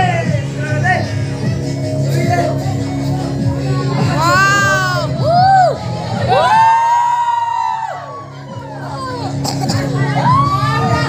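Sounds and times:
dance music with low beat: 0:00.0 - 0:11.0
audience whooping and cheering: 0:05.2 - 0:09.2, 0:10.1 - 0:11.0.

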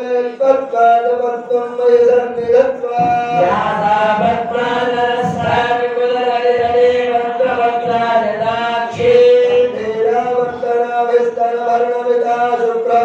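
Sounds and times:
person chanting melodically: 0:00.0 - 0:13.0.

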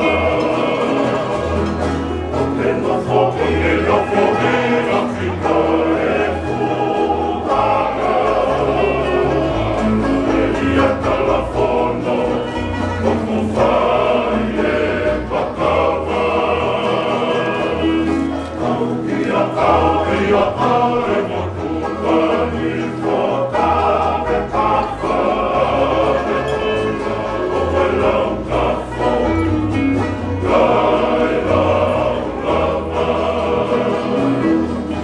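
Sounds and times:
men singing in harmony: 0:00.0 - 0:35.0
strummed acoustic guitars: 0:00.0 - 0:35.0.

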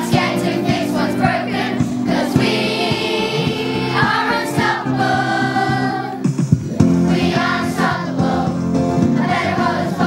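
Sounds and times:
children's choir singing: 0:00.0 - 0:06.2, 0:06.9 - 0:10.0.

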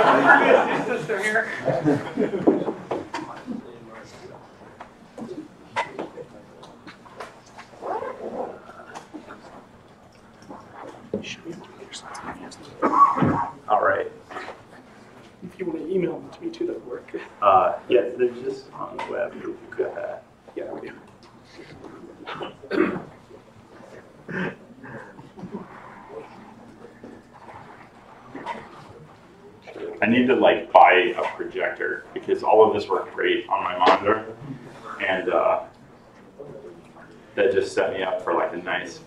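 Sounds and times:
wordless murmur of person's voice: 0:00.0 - 0:39.0.

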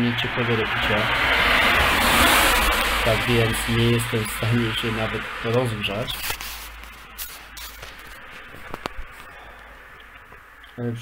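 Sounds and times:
steady hiss: 0:02.4 - 0:11.0.

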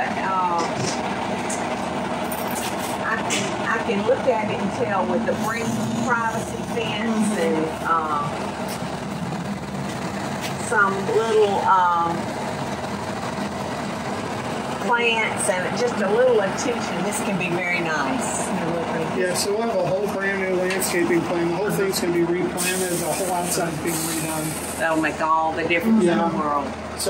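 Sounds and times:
truck engine running: 0:00.0 - 0:27.0.

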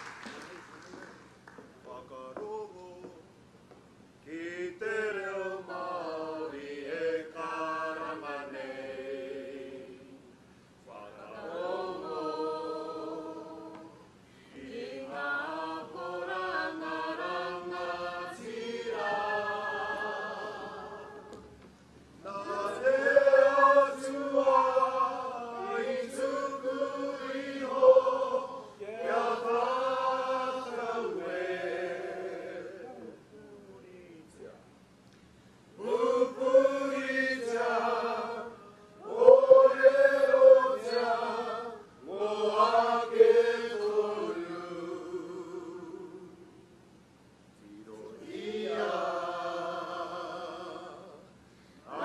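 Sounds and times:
group singing unaccompanied: 0:04.3 - 0:10.3, 0:10.9 - 0:33.2, 0:35.8 - 0:46.6, 0:47.8 - 0:52.0.

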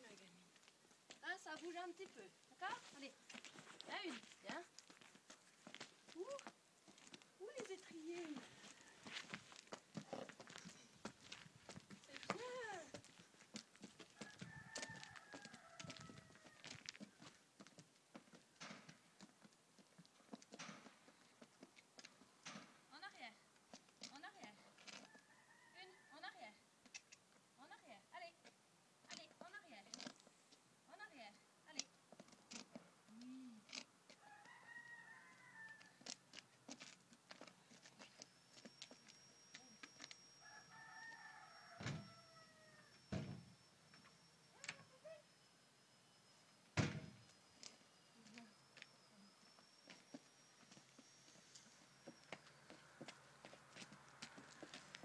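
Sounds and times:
rooster crowing: 0:08.4 - 0:09.5, 0:14.0 - 0:17.3, 0:25.0 - 0:26.2, 0:34.1 - 0:36.2, 0:40.4 - 0:43.1, 0:53.0 - 0:55.0.

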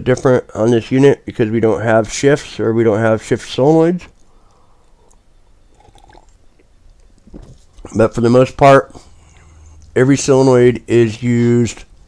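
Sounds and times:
low hum: 0:02.5 - 0:12.0.

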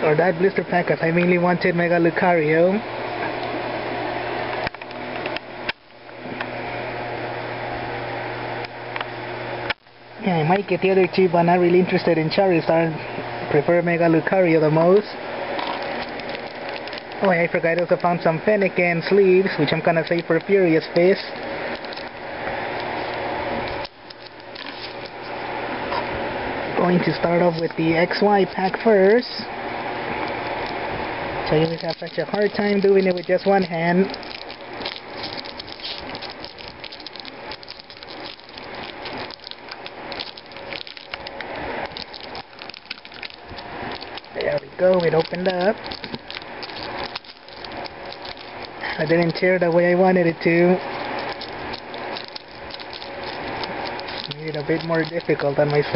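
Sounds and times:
foil wrapper crinkling: 0:13.7 - 0:26.2, 0:26.8 - 0:55.9
handling clicks and rustles: 0:13.9 - 0:26.2, 0:26.8 - 0:55.9.

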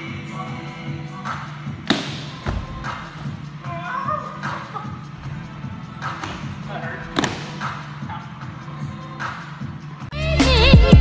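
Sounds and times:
background music: 0:00.0 - 0:11.0
feet landing on box thud: 0:01.8 - 0:03.4.

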